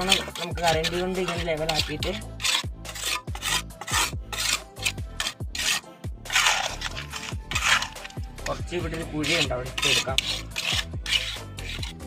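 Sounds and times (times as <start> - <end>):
trowel scraping wet cement: 0.0 - 12.0.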